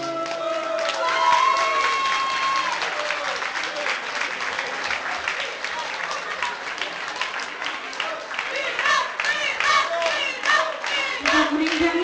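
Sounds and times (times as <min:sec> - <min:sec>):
audience applauding: 0:00.0 - 0:12.0
voices in the crowd: 0:02.2 - 0:12.0.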